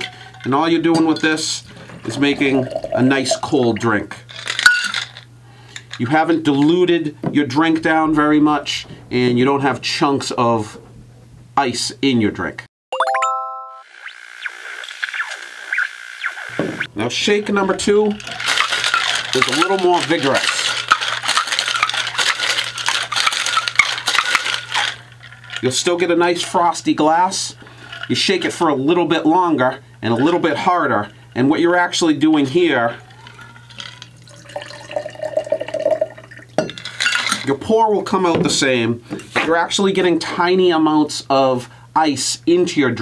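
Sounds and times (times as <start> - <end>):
water pouring into a glass: 1.7 - 3.5, 33.3 - 36.6
synthesizer music with glides: 12.9 - 16.6.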